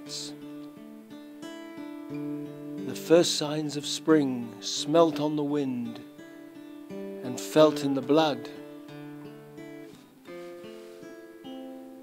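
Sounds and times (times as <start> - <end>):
soft acoustic guitar music: 0.0 - 12.0.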